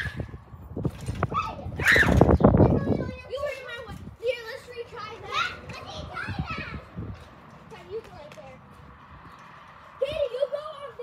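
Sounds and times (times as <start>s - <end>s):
children shouting at play: 0.0s - 0.4s, 1.2s - 7.0s, 9.9s - 11.0s.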